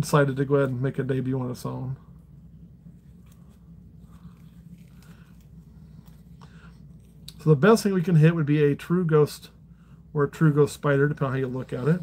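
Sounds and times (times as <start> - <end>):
low steady hum: 0.0 - 12.0.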